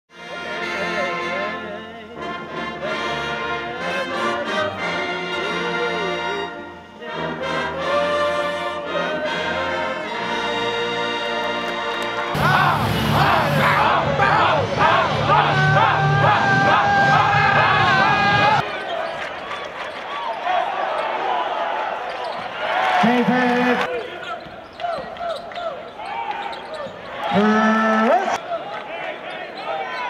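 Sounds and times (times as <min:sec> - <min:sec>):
brass band playing anthem: 0:00.1 - 0:18.6.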